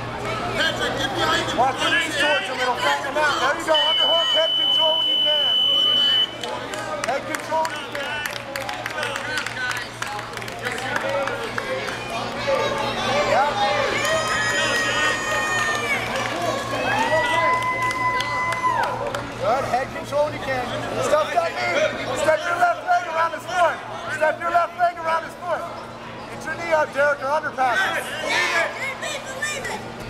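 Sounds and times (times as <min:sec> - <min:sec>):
spectators talking and calling out: 0:00.0 - 0:30.0.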